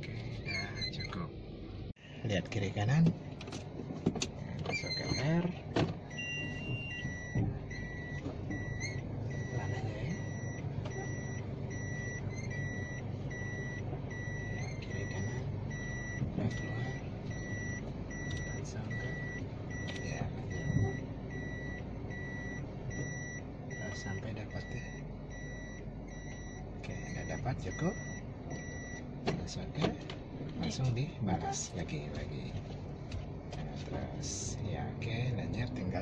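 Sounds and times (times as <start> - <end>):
car engine humming: 0.0 - 36.0
reverse warning beeper: 4.6 - 29.7.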